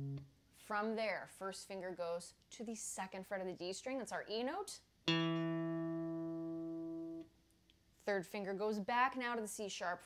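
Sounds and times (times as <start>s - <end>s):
electric guitar note ringing: 0.0s - 0.2s, 5.1s - 7.2s.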